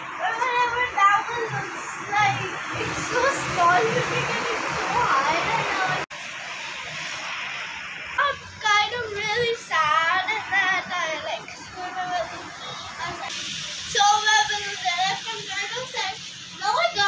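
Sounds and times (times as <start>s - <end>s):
steady background noise: 0.0s - 17.0s
child's voice: 0.2s - 6.0s, 8.1s - 13.3s, 13.9s - 17.0s.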